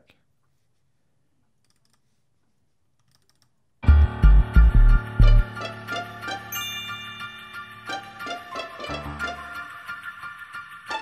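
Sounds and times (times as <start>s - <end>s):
hip hop beat with deep bass: 3.9s - 5.6s.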